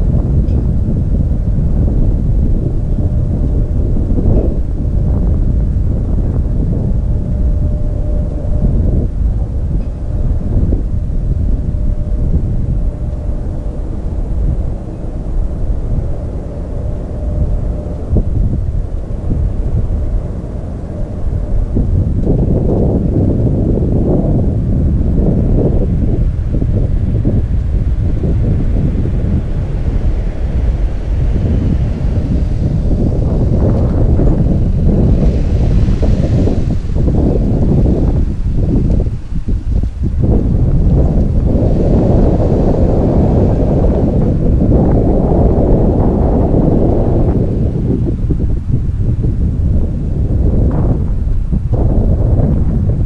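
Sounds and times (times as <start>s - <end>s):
faint steady tone: 0.0s - 53.0s
jet engine rumble: 0.0s - 53.0s
wind buffeting microphone: 0.0s - 53.0s.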